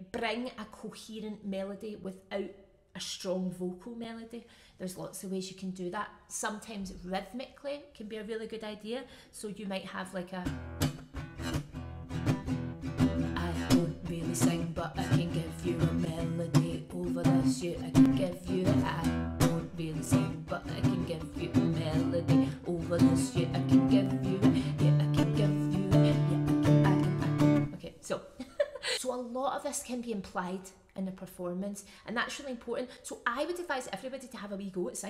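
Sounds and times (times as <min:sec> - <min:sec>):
acoustic guitar strumming: 0:10.5 - 0:27.7.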